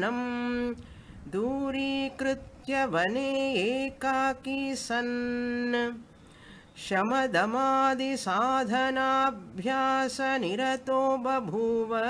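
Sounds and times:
intake of breath: 0:00.8 - 0:01.3, 0:06.1 - 0:06.8.

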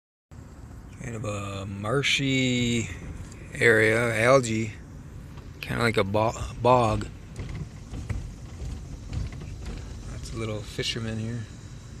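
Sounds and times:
car rumble from inside cabin: 0:00.4 - 0:12.0.

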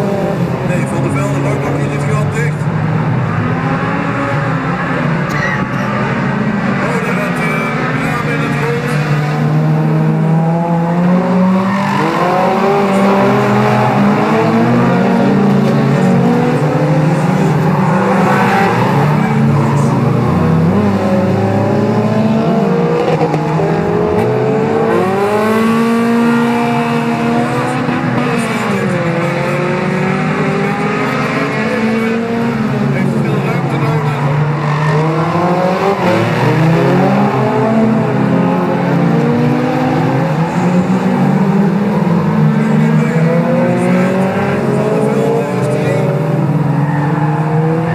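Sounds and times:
race car engines revving: 0:00.0 - 0:47.9.

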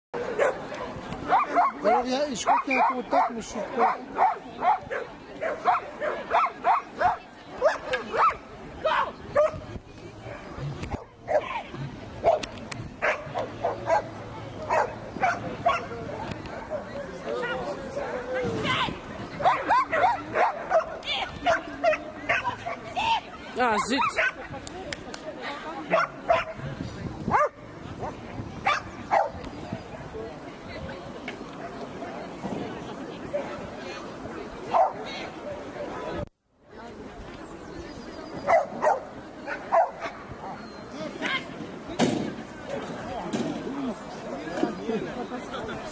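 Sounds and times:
dog barking: 0:00.4 - 0:00.6, 0:01.3 - 0:09.6, 0:12.2 - 0:12.4, 0:13.0 - 0:14.1, 0:14.7 - 0:15.9, 0:19.4 - 0:22.8, 0:23.8 - 0:24.4, 0:25.9 - 0:26.6, 0:27.3 - 0:29.4, 0:34.7 - 0:35.0, 0:38.5 - 0:40.2
dog barking excitedly: 0:19.4 - 0:22.8, 0:23.7 - 0:24.4.

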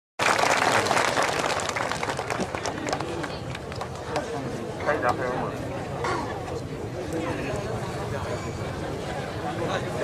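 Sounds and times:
audience applauding: 0:00.2 - 0:04.0.

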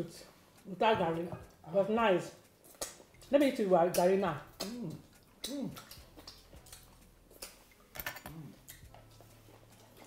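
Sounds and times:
mouth clicks and lip smacks: 0:02.4 - 0:10.0.

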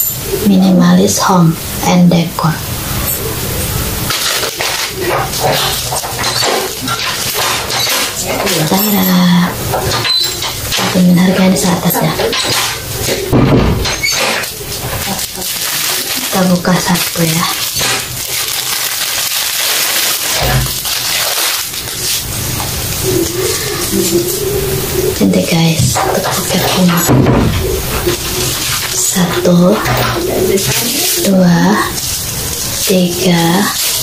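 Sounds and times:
plastic packaging crinkling: 0:02.6 - 0:34.0.

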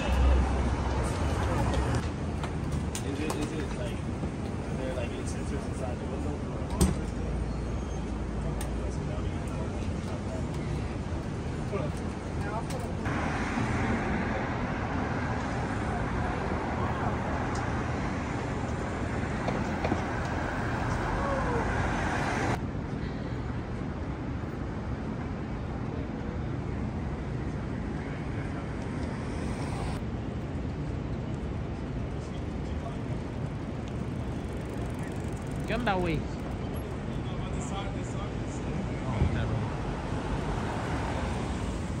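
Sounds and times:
cars passing with steady hiss: 0:00.0 - 0:42.0
dull street background: 0:00.0 - 0:42.0
low rumble of traffic: 0:00.0 - 0:42.0.

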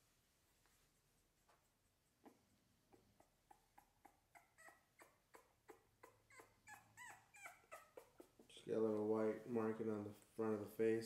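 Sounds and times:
puppy crying high-pitched: 0:03.0 - 0:08.4.

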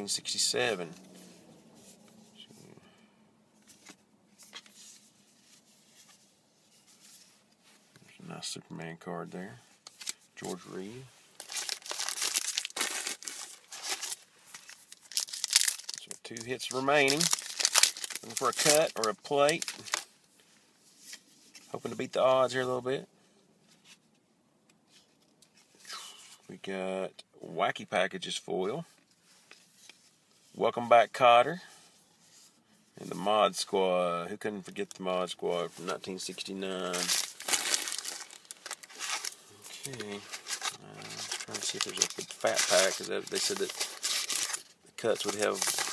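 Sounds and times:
wrapper crinkling and tearing: 0:09.9 - 0:20.1, 0:36.8 - 0:45.9.

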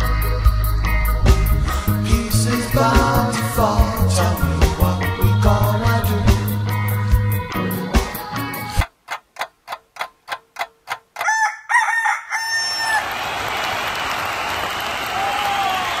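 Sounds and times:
song music: 0:00.0 - 0:08.8
evenly spaced ticks: 0:08.8 - 0:11.4
rooster crowing: 0:11.2 - 0:13.6.

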